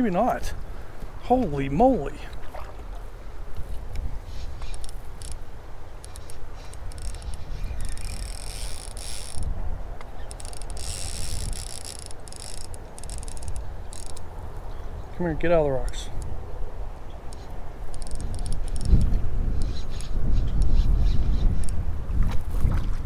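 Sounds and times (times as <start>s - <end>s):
wind rumble on microphone: 2.3s - 23.0s
fishing reel clicking: 6.0s - 9.5s, 10.3s - 14.2s, 17.3s - 19.1s.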